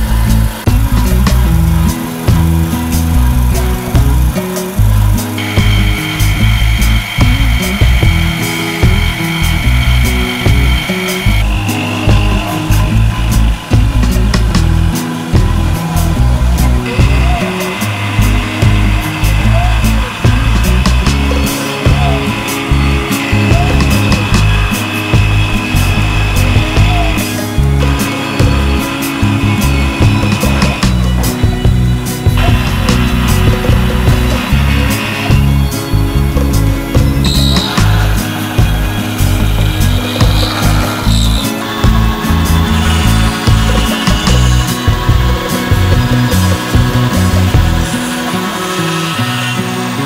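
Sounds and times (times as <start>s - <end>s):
background music: 0.0s - 50.0s
mill spindle whining: 0.0s - 50.0s.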